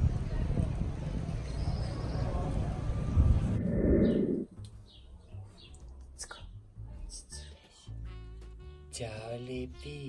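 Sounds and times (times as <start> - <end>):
loud rough street noise: 0.0 - 4.9.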